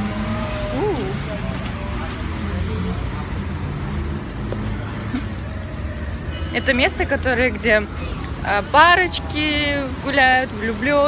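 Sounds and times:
indistinct voices of passers-by: 0:00.0 - 0:11.0.

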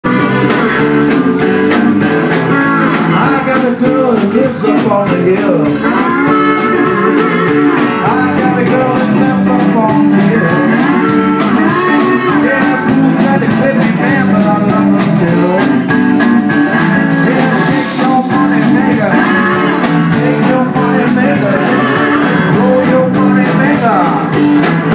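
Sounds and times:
live blues band: 0:00.0 - 0:24.9.

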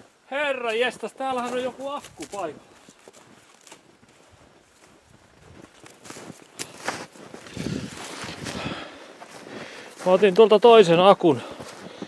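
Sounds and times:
footsteps in deep snow: 0:00.0 - 0:12.0.

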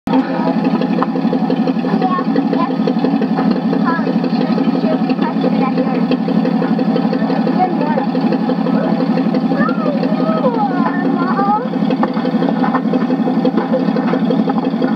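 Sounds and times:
people talking: 0:00.1 - 0:00.8, 0:01.7 - 0:03.1, 0:03.7 - 0:12.0
tractor engine chugging: 0:00.1 - 0:14.9.

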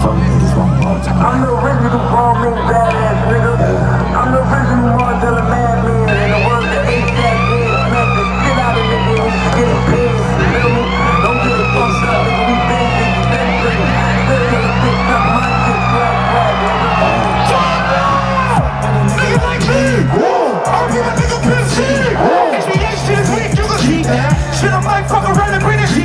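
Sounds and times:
low bass drone: 0:00.0 - 0:26.0
sweeping siren-like tones: 0:04.8 - 0:26.0.

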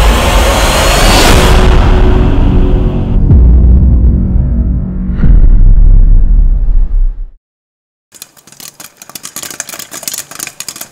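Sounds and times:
popcorn popping: 0:08.1 - 0:10.9.

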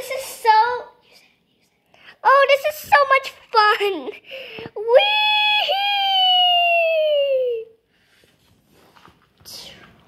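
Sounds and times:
person crying out high-pitched: 0:05.0 - 0:07.8.

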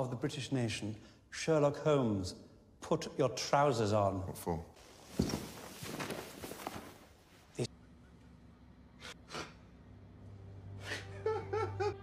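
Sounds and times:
footsteps on carpet: 0:04.8 - 0:07.2
sheet dragging and rustling: 0:04.8 - 0:07.4.

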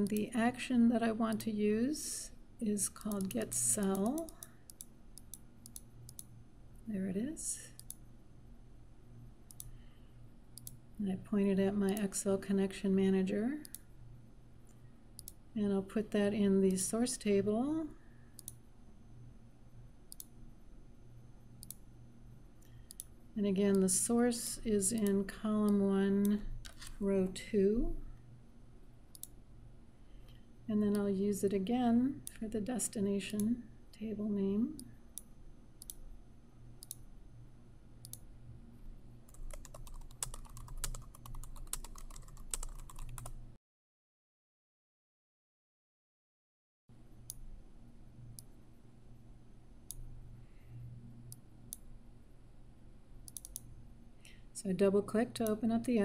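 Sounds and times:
faint computer mouse clicks: 0:09.5 - 0:09.8, 0:20.1 - 0:20.3, 0:21.6 - 0:21.8, 0:22.6 - 0:23.1, 0:29.1 - 0:29.4, 0:34.8 - 0:36.0, 0:36.8 - 0:37.0, 0:38.0 - 0:38.2, 0:53.3 - 0:53.7
keyboard typing: 0:39.3 - 0:43.4.

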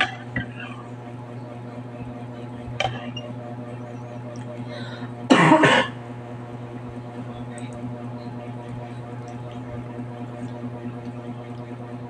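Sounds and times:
low electrical hum: 0:00.0 - 0:12.0
person coughing: 0:05.3 - 0:06.0.

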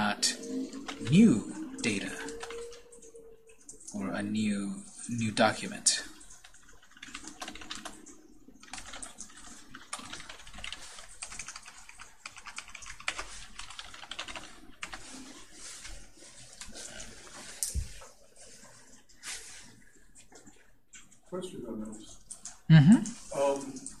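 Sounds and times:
computer keyboard typing: 0:00.0 - 0:17.7, 0:22.0 - 0:22.7.

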